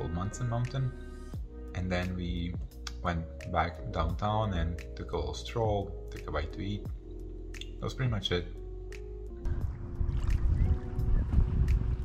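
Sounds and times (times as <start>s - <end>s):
background music with held notes: 0.0s - 12.0s
lake water lapping: 9.6s - 12.0s.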